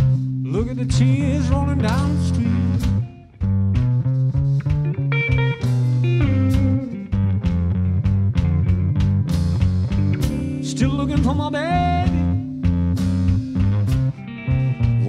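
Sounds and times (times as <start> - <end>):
bent electric guitar notes: 0.0 - 15.0
electric blues band playing: 0.0 - 15.0.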